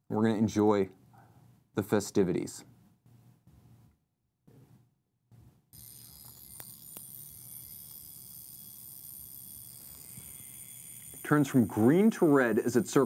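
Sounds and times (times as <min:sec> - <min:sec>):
watch controls clicking: 0:05.8 - 0:13.0.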